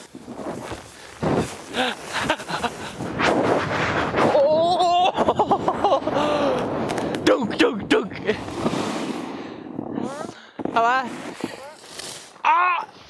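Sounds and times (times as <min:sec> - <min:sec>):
snowboard scraping on snow: 0:00.0 - 0:04.6, 0:08.2 - 0:12.4.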